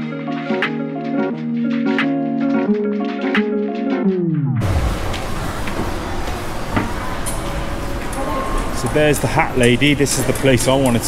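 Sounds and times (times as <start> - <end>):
background music slowing down: 0.0 - 6.8
air handling hum: 4.6 - 8.3
distant voices: 4.6 - 11.0.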